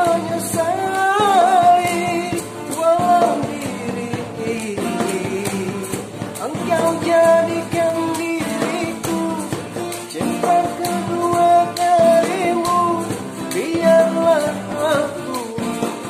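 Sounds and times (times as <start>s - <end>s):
instrumental accompaniment with drums: 0.0s - 16.0s
man singing: 0.0s - 16.0s.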